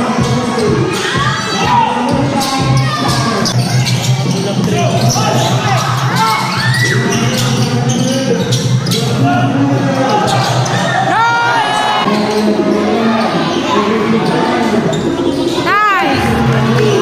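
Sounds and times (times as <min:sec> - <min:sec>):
crowd chatter and shouts: 0:00.0 - 0:17.0.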